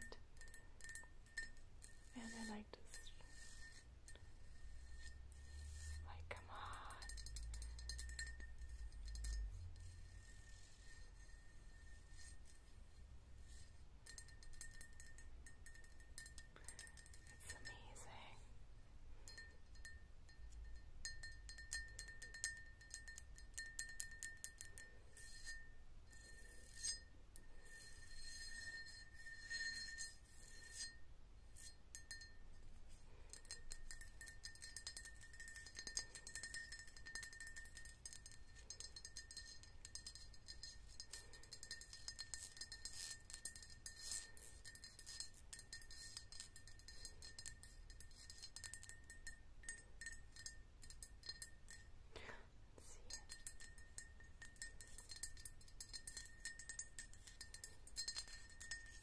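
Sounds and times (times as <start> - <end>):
faint ringing of vase: 0.0 - 59.0.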